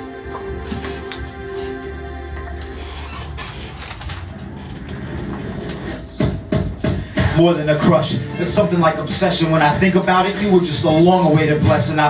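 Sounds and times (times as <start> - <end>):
hip-hop backing track over speakers: 0.0 - 12.0.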